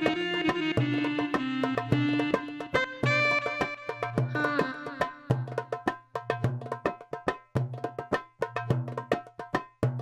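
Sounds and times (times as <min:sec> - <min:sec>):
hand drum rhythm: 0:00.0 - 0:10.0.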